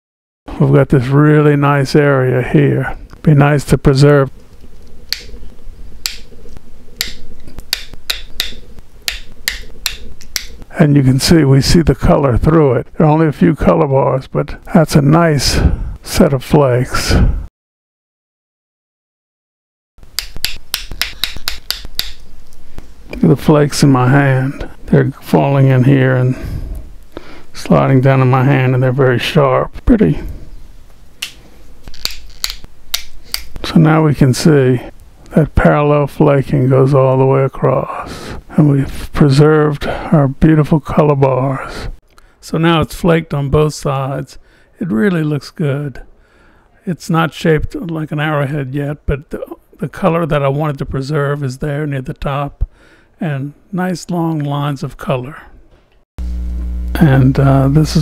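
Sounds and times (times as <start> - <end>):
stone flakes snapping clicks: 5.1 - 5.3, 6.0 - 6.3, 7.0 - 10.6, 20.1 - 22.6, 31.2 - 33.6
stone flakes clicking: 20.2 - 22.6.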